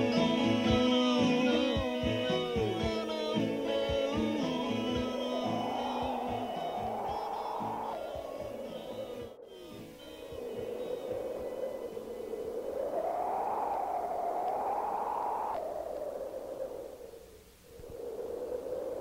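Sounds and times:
guitar song: 0.0s - 11.1s
electronic whooshing sweep: 4.9s - 12.3s.

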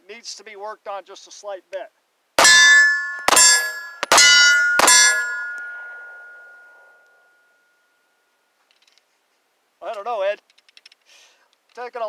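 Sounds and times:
pistol shots: 2.4s - 6.4s
metallic ringing: 2.4s - 8.2s.

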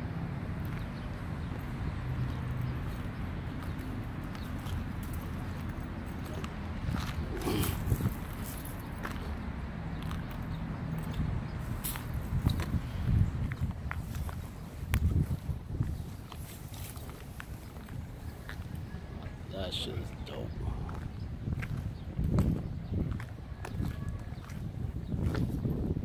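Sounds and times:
footsteps on pavement: 0.5s - 26.0s.

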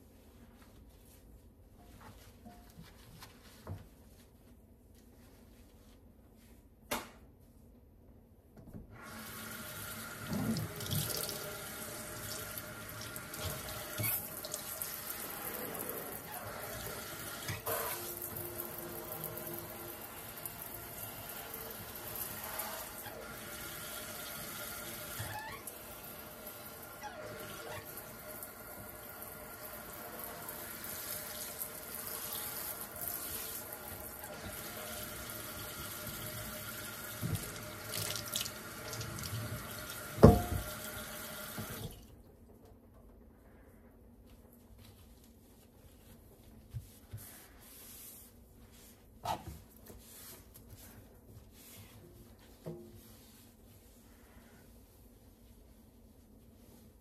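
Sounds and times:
faucet water splashing into sink: 10.2s - 11.6s, 37.0s - 42.0s.

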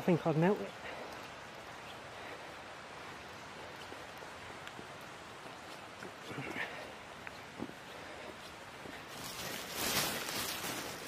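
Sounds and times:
rain falling in woodland: 0.0s - 11.0s
water drips: 0.6s - 8.6s
faint footsteps: 0.7s - 11.0s.

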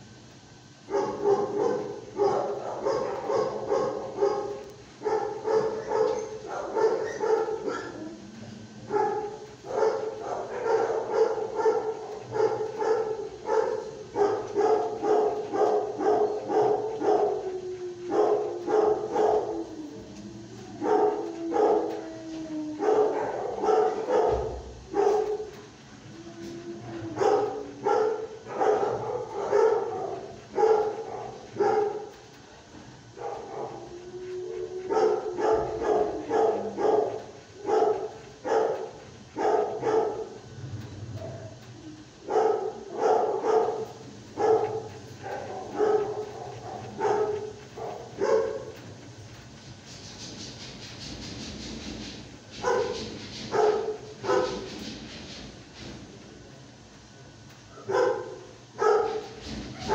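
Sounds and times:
dogs barking: 0.8s - 56.0s, 57.7s - 59.9s
dog drawn-out sliding notes: 1.4s - 56.0s.

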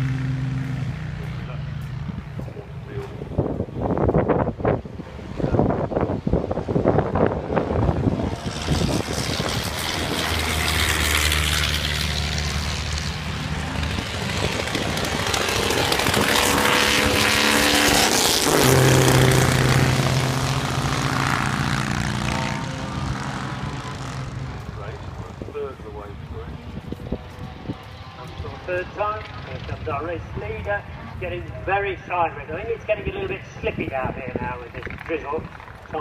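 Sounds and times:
racing car engines passing: 0.0s - 36.0s.

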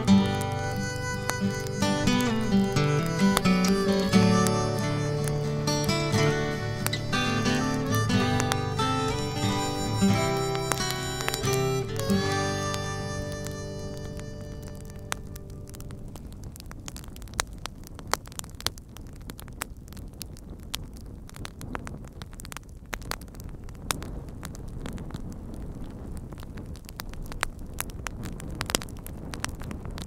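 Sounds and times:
fire crackling and popping: 0.0s - 30.0s.

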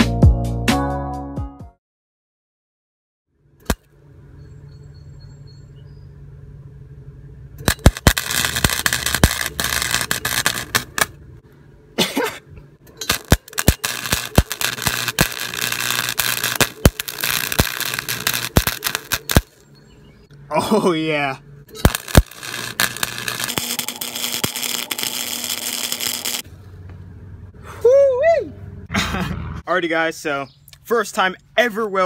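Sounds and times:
welding arc crackling and spitting: 7.6s - 11.2s, 13.0s - 19.6s, 21.8s - 26.5s.

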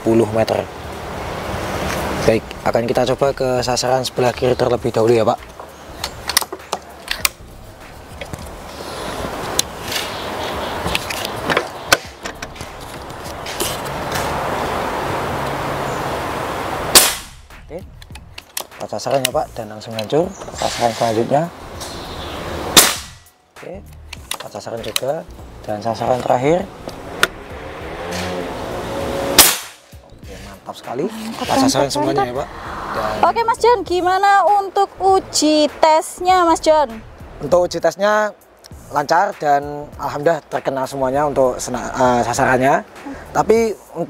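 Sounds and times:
motor vehicle passing by: 0.0s - 18.4s, 20.1s - 23.3s, 24.7s - 34.1s
air rifle shot: 16.9s - 17.4s, 22.7s - 23.3s, 29.4s - 29.9s.

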